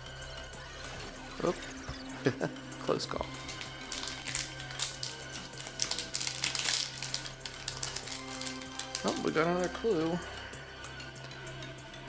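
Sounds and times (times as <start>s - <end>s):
foil wrapper crinkling and tearing: 3.2s - 9.9s.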